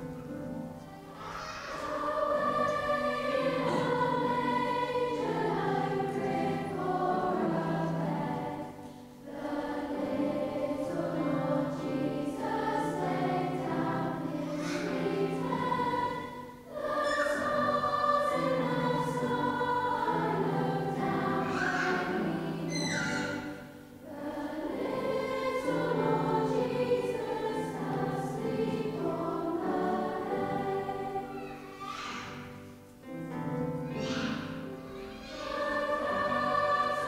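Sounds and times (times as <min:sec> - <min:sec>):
children's choir singing: 0:00.0 - 0:37.0.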